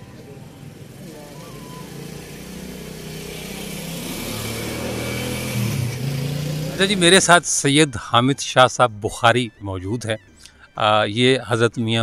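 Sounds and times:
vehicle engine approaching: 0.0 - 7.5.

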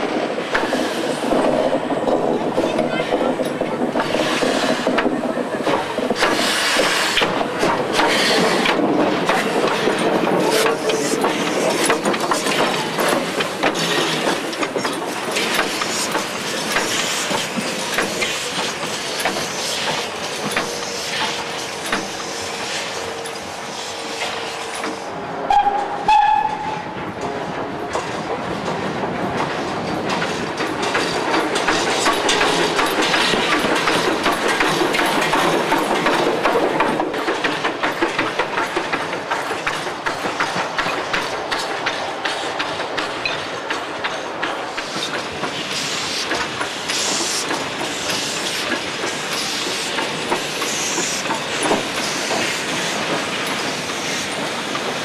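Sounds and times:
steam locomotive exhaust beats: 0.0 - 55.0
steam whistle blast: 25.4 - 26.9.

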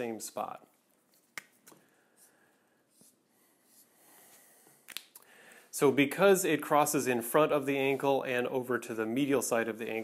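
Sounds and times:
marker rubbing on skin: 2.9 - 4.4.

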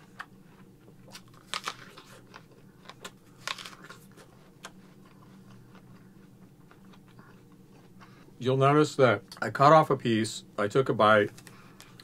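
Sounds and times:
chewing: 0.2 - 8.3
crisp apple bites: 1.0 - 6.0.

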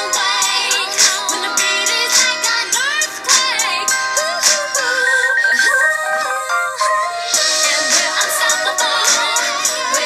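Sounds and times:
electronic pop synthesizer music: 0.0 - 10.0.

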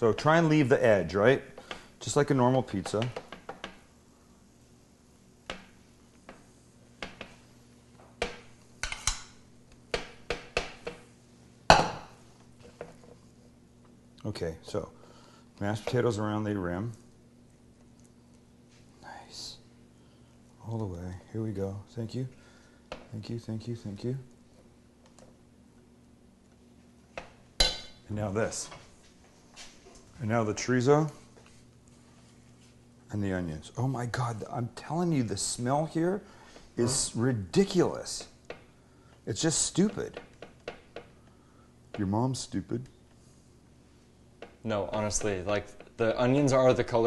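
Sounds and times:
metal spoon clinking on cookware: 27.6 - 28.0.

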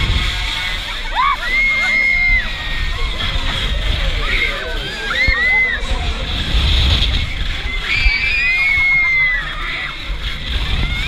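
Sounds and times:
wind buffeting microphone: 0.0 - 1.5, 2.2 - 11.0
riders screaming: 0.0 - 11.0.

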